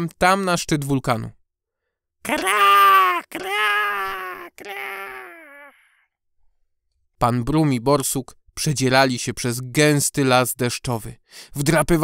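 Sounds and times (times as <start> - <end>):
person imitating bird call: 2.3 - 5.8.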